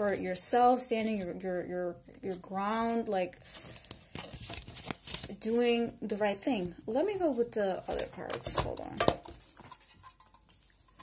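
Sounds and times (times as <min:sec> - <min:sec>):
cards rustling: 0:02.4 - 0:05.7.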